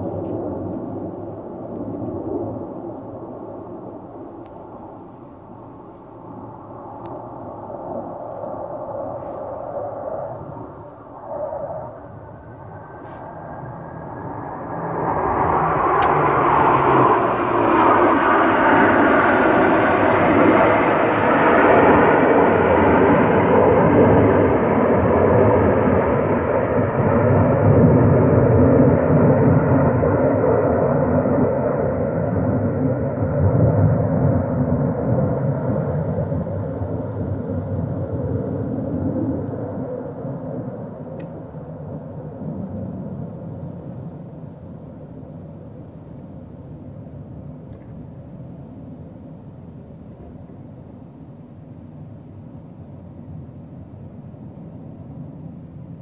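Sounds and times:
jet engines roaring past: 0.0s - 56.0s.

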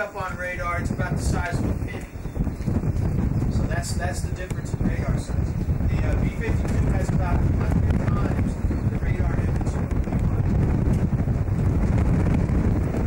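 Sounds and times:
wind buffeting microphone: 0.0s - 13.0s
faint voices: 3.4s - 10.5s.

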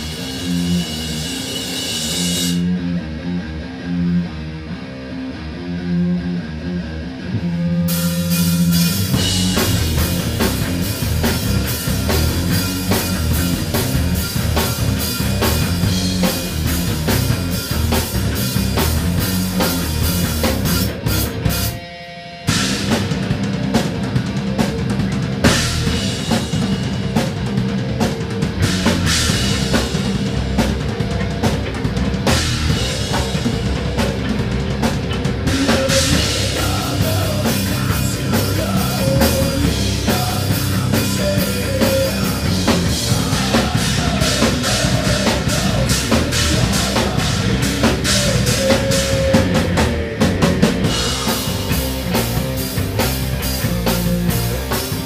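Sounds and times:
drum kit: 0.0s - 4.3s, 6.6s - 55.0s
guitars: 0.0s - 55.0s
rock band playing: 0.0s - 55.0s.

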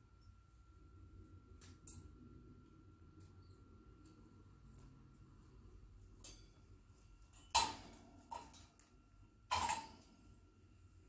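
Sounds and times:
parrot knocking and rattling cage: 9.5s - 10.1s.

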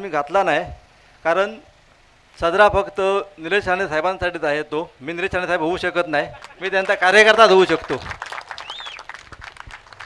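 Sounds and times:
people clapping: 6.3s - 10.0s.

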